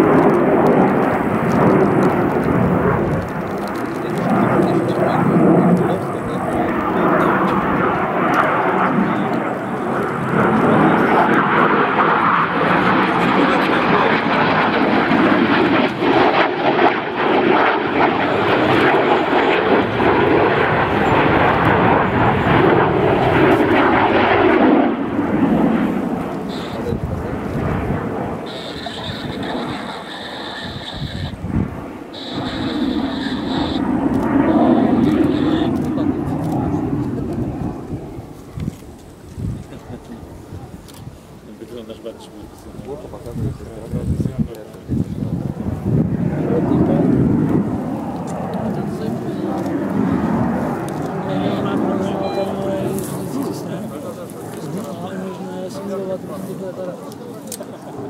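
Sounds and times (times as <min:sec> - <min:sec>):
steady high whine: 0:00.0 - 0:39.4, 0:46.8 - 0:58.0
jet engine roar: 0:00.0 - 0:58.0.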